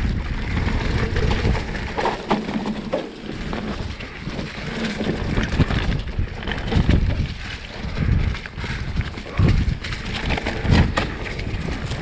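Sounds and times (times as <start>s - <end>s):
bike rattling and knocking: 0.0s - 12.0s
wind buffeting microphone: 0.0s - 12.0s.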